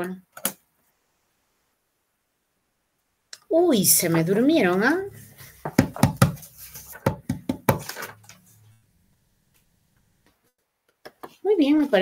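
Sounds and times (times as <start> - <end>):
sharp taps on desk: 5.7 - 6.4.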